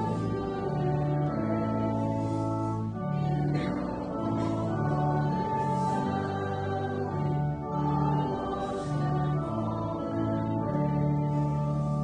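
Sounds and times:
congregation singing a hymn: 0.0 - 12.0.

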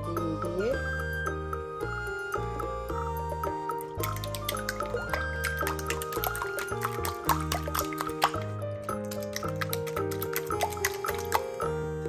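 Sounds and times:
whisk beating eggs in glass bowl: 4.0 - 11.6.

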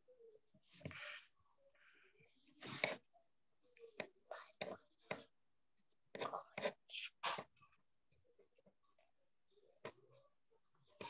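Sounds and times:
person whispering: 3.8 - 5.3, 6.1 - 7.5.

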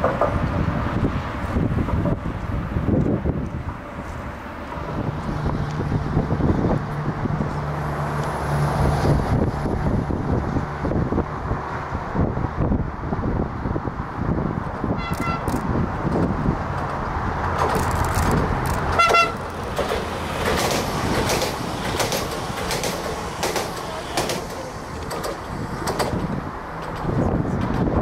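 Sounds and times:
train rumble: 0.0 - 28.0
train horn toots: 15.0 - 15.5, 19.0 - 19.5.

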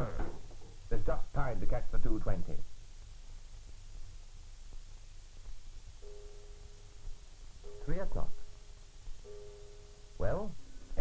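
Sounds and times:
film soundtrack hiss and hum: 0.0 - 11.0
soft held chord: 5.9 - 11.0.

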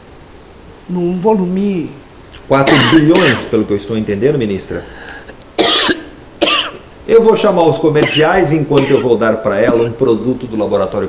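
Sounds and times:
woman coughing: 2.7 - 3.5, 5.6 - 6.8, 8.0 - 10.0.

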